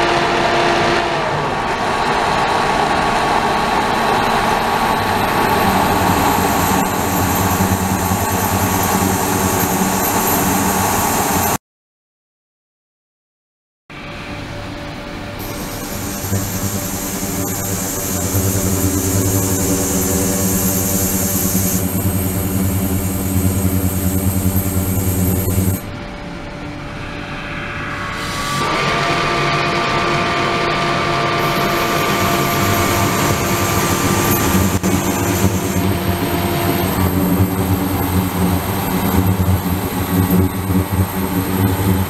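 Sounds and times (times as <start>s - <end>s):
machine drone: 0.0s - 11.6s, 13.9s - 42.0s
steady higher tones: 1.5s - 11.6s, 14.0s - 42.0s
steady hiss: 15.4s - 25.8s.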